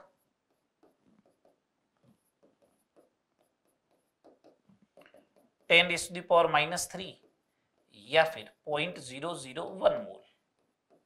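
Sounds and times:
pen writing on a board: 0:00.0 - 0:05.7, 0:07.1 - 0:08.0, 0:10.4 - 0:11.0.

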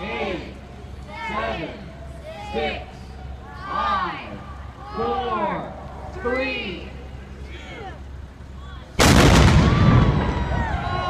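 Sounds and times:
voices whooping and cheering: 0:00.9 - 0:11.0.

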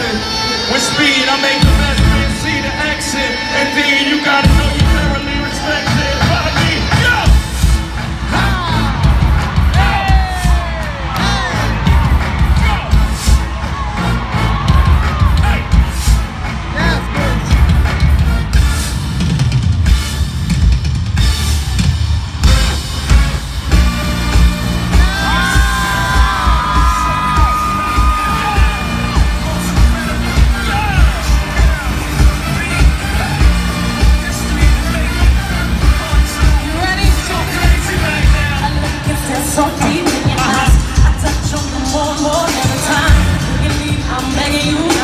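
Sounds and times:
crowd cheering and yelling: 0:00.0 - 0:45.0
stadium concert music with bass: 0:00.0 - 0:45.0.

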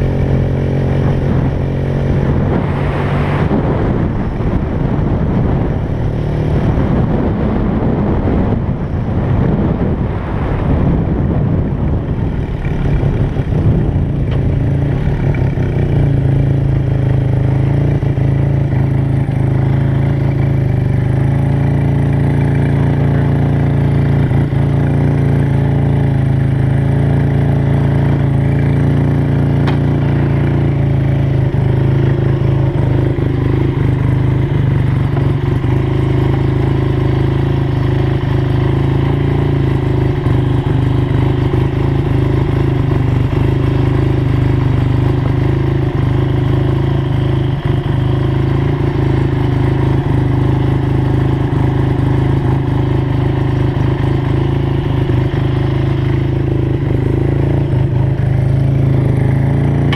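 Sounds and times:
motorcycle engine idling: 0:00.0 - 0:02.5, 0:11.6 - 0:59.9.

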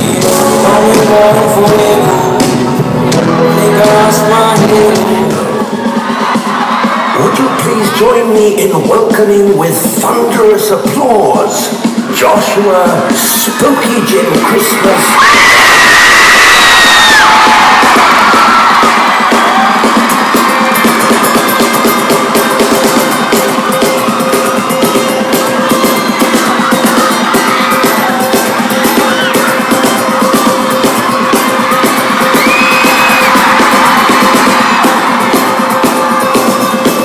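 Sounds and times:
crowd screaming and cheering: 0:00.0 - 0:37.0.

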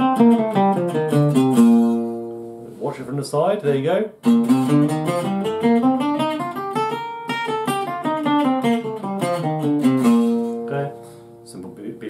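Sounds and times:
acoustic guitar picking a scale: 0:00.0 - 0:03.1, 0:03.8 - 0:12.0.

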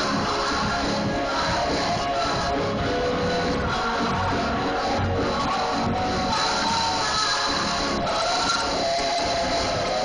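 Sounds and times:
choir singing gospel: 0:00.0 - 0:10.0.

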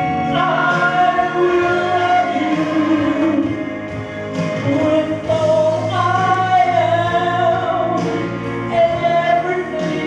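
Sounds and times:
man singing gospel song: 0:00.0 - 0:10.0
musical accompaniment: 0:00.0 - 0:10.0.

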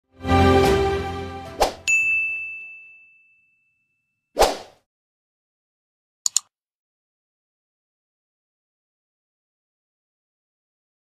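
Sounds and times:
quick swish: 0:01.6 - 0:01.8, 0:04.4 - 0:04.8
bright ding: 0:01.9 - 0:04.0.

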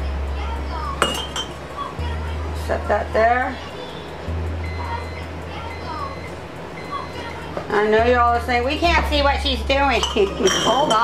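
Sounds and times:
metal funnel clinking on glass jar: 0:09.9 - 0:11.0.

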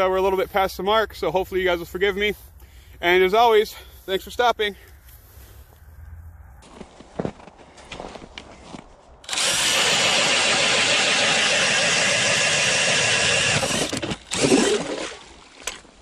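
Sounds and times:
cordless drill spinning ice auger: 0:09.2 - 0:15.8.

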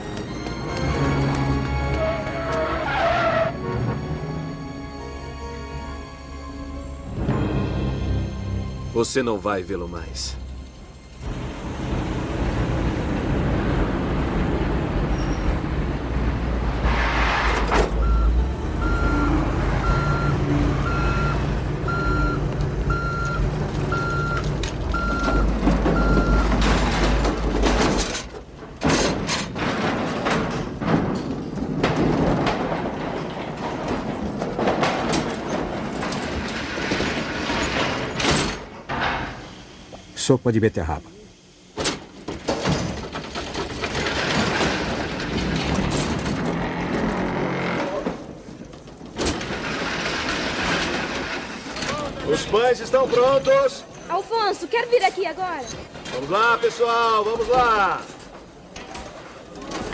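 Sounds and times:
heavy engine running: 0:10.4 - 0:16.8, 0:17.5 - 0:28.9
knocks and clatter: 0:22.0 - 0:39.5, 0:41.8 - 0:53.7.

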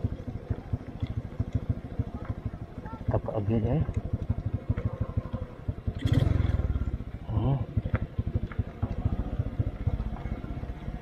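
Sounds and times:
motorcycle engine running: 0:00.0 - 0:11.0.

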